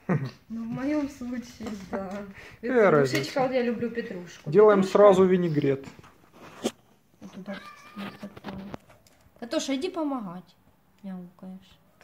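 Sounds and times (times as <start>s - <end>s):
cat meowing faintly: 7.3s - 8.7s.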